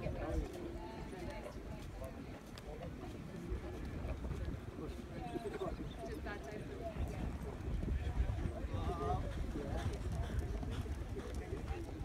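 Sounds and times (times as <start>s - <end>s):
hoofbeats on sand: 0.4s - 12.0s.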